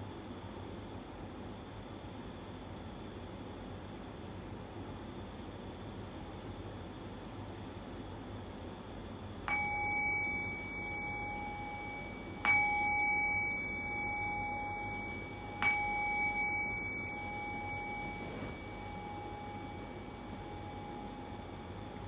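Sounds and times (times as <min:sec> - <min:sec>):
meditation bell ringing: 0:09.5 - 0:22.0.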